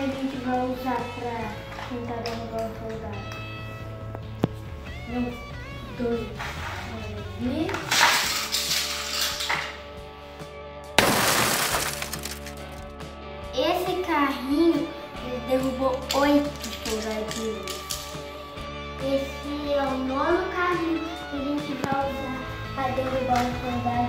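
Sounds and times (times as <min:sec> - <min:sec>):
background music with singing: 0:00.0 - 0:11.0, 0:12.9 - 0:24.0
toy car crashing into toys: 0:07.7 - 0:09.9, 0:11.0 - 0:12.9, 0:16.4 - 0:18.2.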